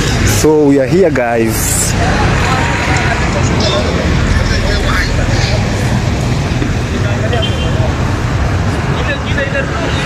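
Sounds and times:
faint voices: 0.0s - 10.0s
road traffic rumble: 0.0s - 10.0s.

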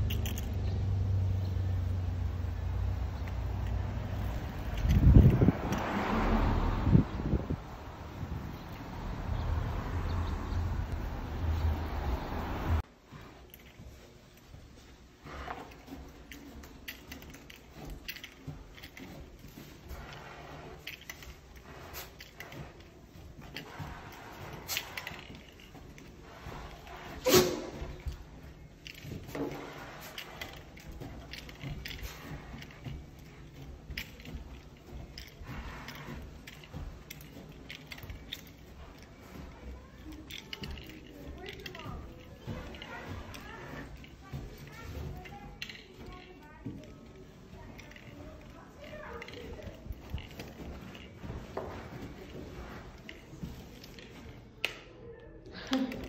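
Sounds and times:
harness clinking: 0.0s - 55.1s.

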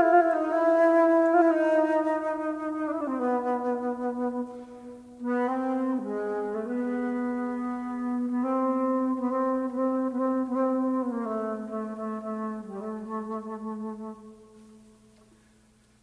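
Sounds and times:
jazz flute playing low notes: 0.0s - 15.2s.

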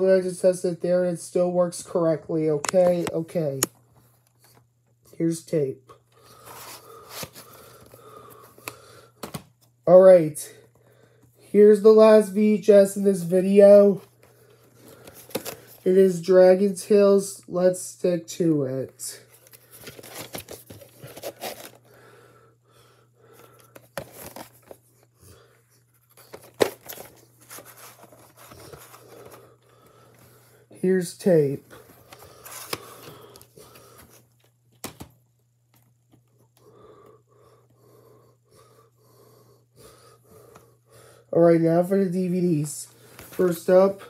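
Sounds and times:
cassette handling noise: 2.6s - 4.6s, 8.6s - 9.7s, 14.2s - 15.8s, 19.4s - 21.9s, 23.5s - 24.9s, 26.0s - 29.5s, 31.8s - 36.3s
plastic case rustling and scraping: 14.6s - 15.8s, 19.4s - 21.9s, 23.5s - 25.0s, 25.8s - 29.5s.

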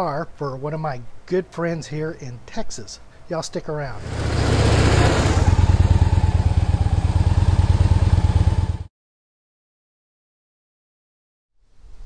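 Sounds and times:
motorcycle engine pulsing: 4.0s - 8.9s.

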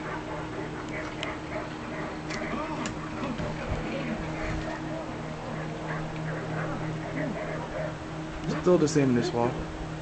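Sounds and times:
low hum: 0.0s - 8.9s
faint voices: 0.1s - 9.7s.

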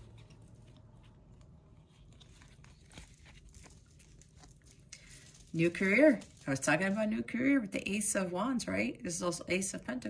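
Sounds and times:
cards ticking and rustling: 0.0s - 7.0s.

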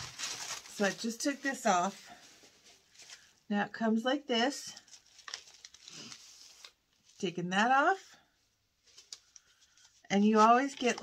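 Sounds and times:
plastic packaging crinkling: 0.0s - 3.3s, 4.8s - 7.2s, 8.8s - 11.0s.

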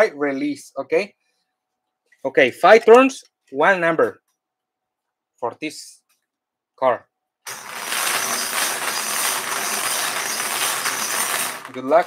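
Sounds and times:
bingo balls clattering: 7.5s - 12.0s
bingo cage being cranked: 7.5s - 12.0s.

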